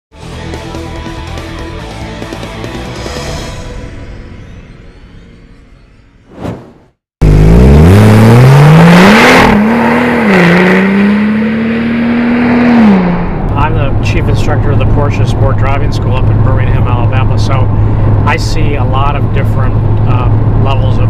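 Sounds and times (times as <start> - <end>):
music: 0.1 - 6.4
short whoosh: 6.3 - 7.0
car engine revving: 7.2 - 18.3.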